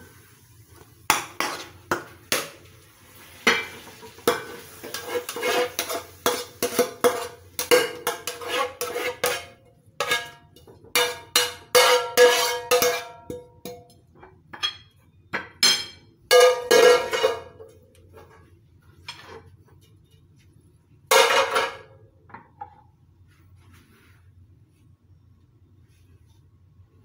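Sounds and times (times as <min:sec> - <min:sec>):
metal spatula scraping frying pan: 0:01.4 - 0:01.8, 0:03.4 - 0:13.2, 0:16.3 - 0:17.6.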